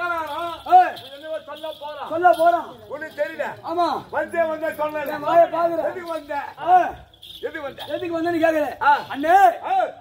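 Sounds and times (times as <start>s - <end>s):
man delivering stage dialogue: 0.0s - 10.0s.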